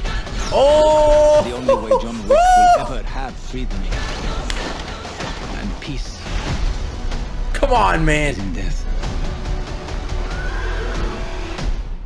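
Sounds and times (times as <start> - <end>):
horse whinnying: 10.2 - 11.5.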